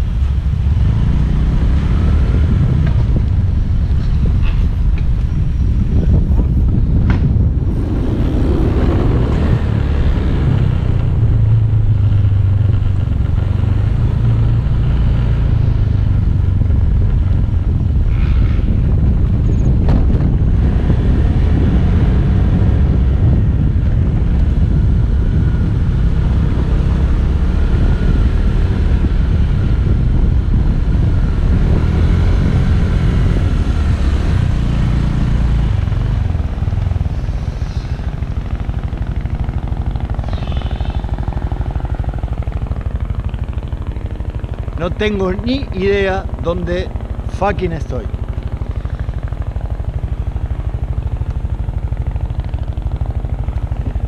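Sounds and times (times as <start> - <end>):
motor scooter engine running: 34.1 - 54.0.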